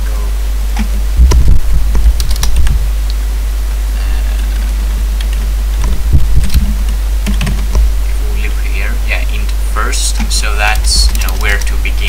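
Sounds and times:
steady low hum: 0.0 - 12.0
computer keyboard typing: 2.2 - 2.8, 6.4 - 7.7, 10.1 - 11.8.

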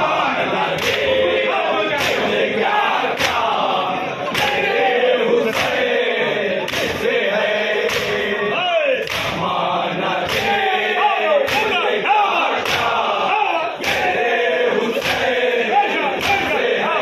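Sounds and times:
crowd beating chests in unison: 0.0 - 17.0
men chanting in chorus: 0.0 - 17.0.

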